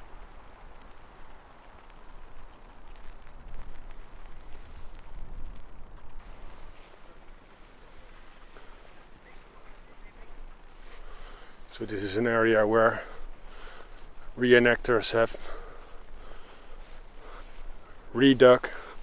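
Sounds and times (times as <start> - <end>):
steady low rumble: 0.0 - 19.0
footsteps on snowy forest floor: 6.2 - 19.0.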